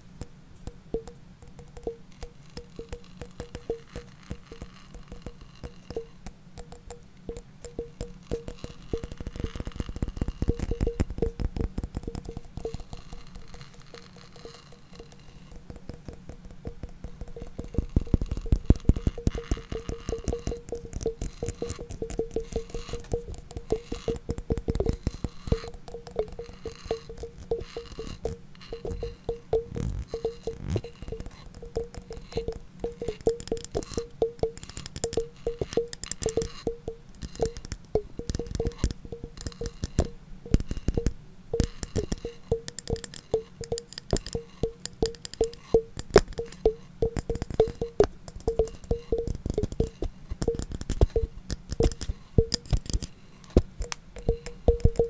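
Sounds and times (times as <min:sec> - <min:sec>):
rapid tapping and clicking: 0:00.0 - 0:55.0.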